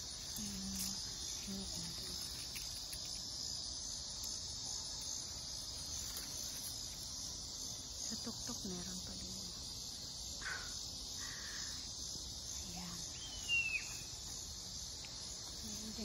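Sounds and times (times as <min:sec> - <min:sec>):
crickets chirping: 0:00.0 - 0:16.0.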